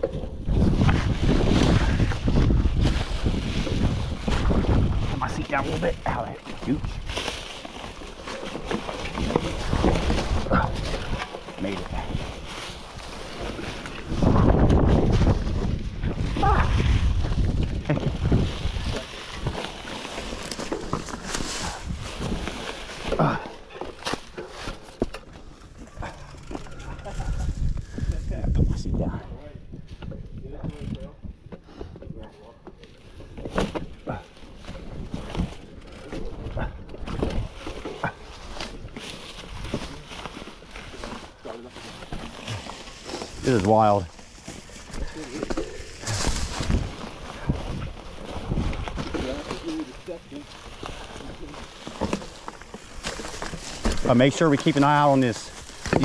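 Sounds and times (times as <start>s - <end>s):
wind rumble on microphone: 0.0s - 7.2s, 13.5s - 19.7s, 26.0s - 32.2s, 36.2s - 37.8s, 45.9s - 49.4s
bike clicks and rattles: 0.0s - 29.0s, 29.6s - 56.0s
bike tyres crunching leaves and rock: 0.0s - 56.0s.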